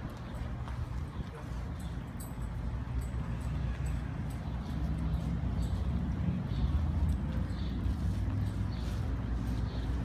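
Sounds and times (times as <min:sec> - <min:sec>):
footsteps on asphalt: 0:00.0 - 0:10.0.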